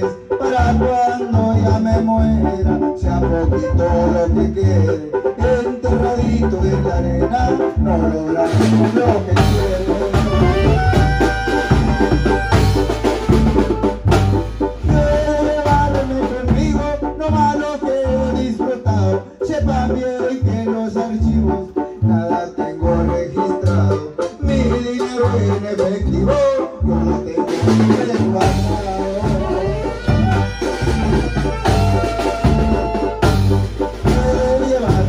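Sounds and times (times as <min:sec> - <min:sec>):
bass drum beat: 0:00.0 - 0:35.0
brass melody: 0:00.0 - 0:35.0
low bass notes: 0:00.0 - 0:35.0.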